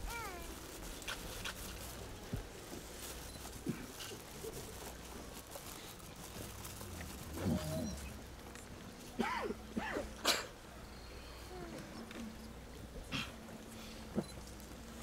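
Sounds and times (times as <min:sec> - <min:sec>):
hushed crowd hum: 0:00.0 - 0:15.0.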